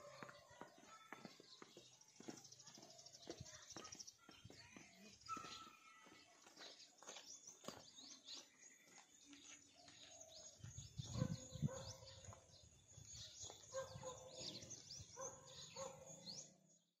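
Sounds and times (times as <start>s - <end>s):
birds chirping: 0.0s - 17.0s.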